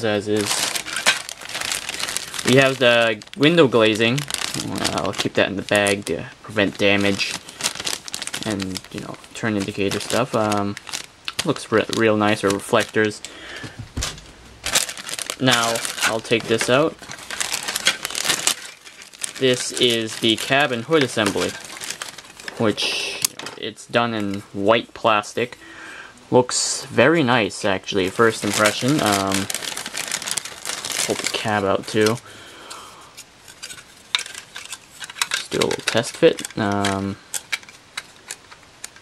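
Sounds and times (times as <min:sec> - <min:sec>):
plastic bag crinkling: 0:00.0 - 0:25.6, 0:27.6 - 0:39.0
plastic parts clicking together: 0:00.5 - 0:03.4, 0:33.2 - 0:39.0.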